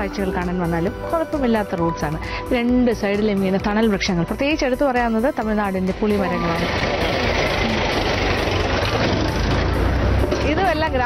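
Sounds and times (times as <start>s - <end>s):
tractor diesel engine passing: 5.0s - 11.0s.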